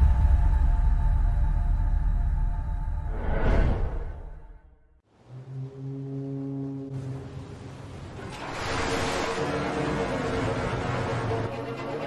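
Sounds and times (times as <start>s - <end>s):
ship's horn long low blast: 5.1s - 12.0s.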